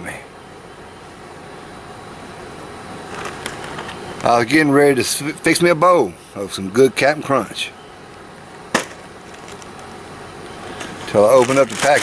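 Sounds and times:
faint steady background noise: 0.0s - 12.0s.

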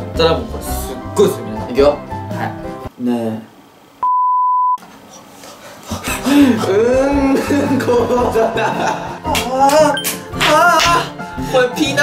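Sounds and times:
censor bleep tone: 4.0s - 4.8s.

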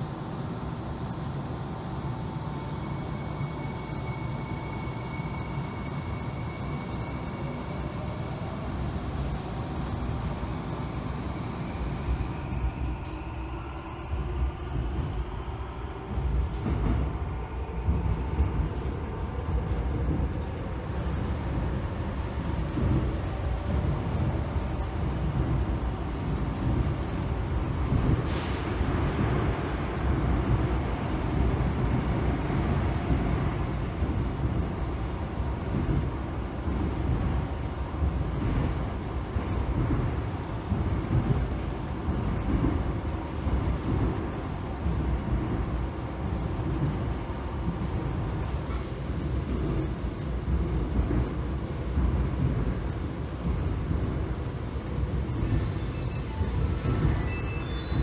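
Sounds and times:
subway train rumbling on track: 0.0s - 58.0s.

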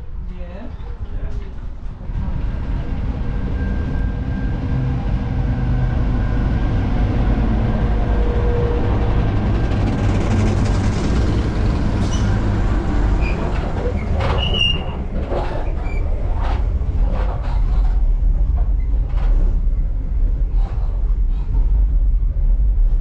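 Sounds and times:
diesel locomotive engine rumbling: 0.8s - 23.0s
brief high squeak: 12.0s - 12.4s, 13.2s - 16.1s.

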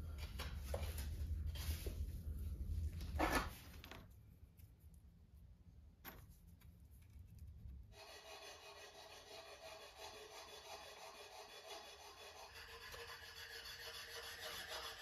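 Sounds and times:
metal spatula scraping tiles: 8.0s - 15.0s.

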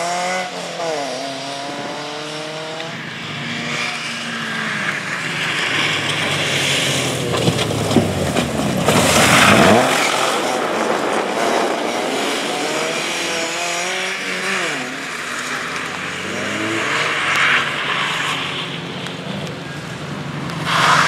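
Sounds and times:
rally car engine revving: 0.0s - 21.0s
water hissing off tyres: 20.5s - 21.0s.

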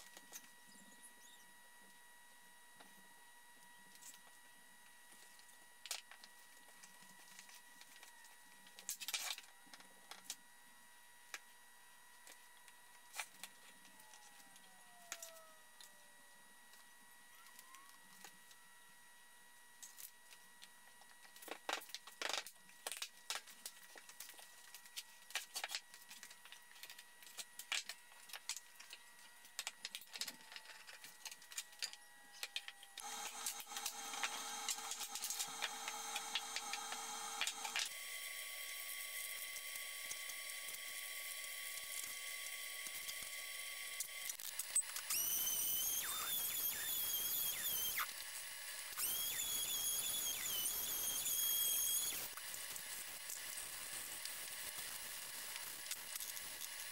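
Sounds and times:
faint high whine: 0.0s - 21.3s, 29.9s - 52.4s
steady hum: 29.9s - 42.7s.

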